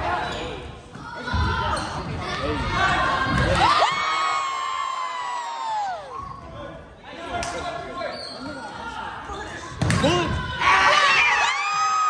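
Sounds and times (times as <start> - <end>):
people talking in a gym: 0.0 - 12.0.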